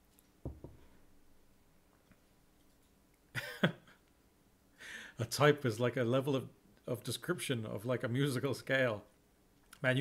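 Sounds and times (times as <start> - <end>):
man drawing a breath: 4.8 - 5.2.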